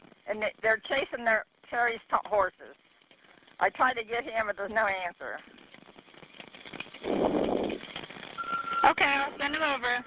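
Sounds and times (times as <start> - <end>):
muffled noise burst on phone line: 8.3 - 9.4
short steady beep: 8.4 - 9.0.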